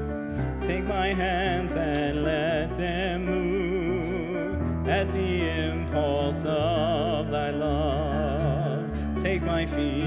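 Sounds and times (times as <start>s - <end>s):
grand piano: 0.0s - 10.0s
person singing a hymn: 0.6s - 10.0s.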